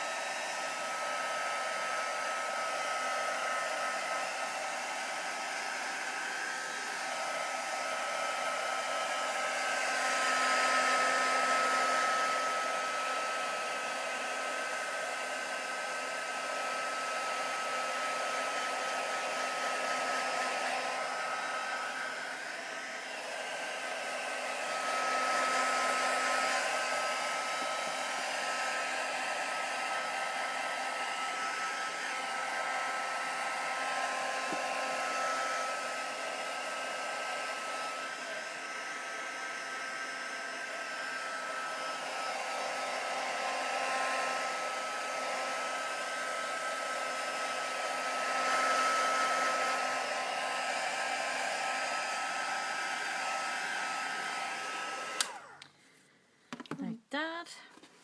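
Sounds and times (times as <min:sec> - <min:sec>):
hot-air tool whining: 0:00.0 - 0:55.9.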